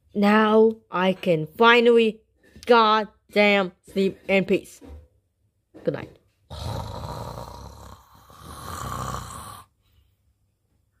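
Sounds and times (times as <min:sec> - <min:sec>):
person snoring: 0:06.5 - 0:09.8.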